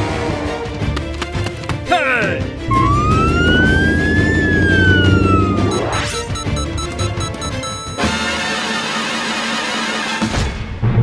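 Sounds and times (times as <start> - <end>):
cartoon siren wail: 2.7 - 6.1.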